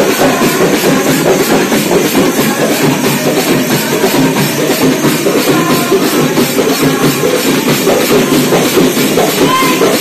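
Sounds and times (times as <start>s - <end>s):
hand drums fast beat: 0.0s - 10.0s.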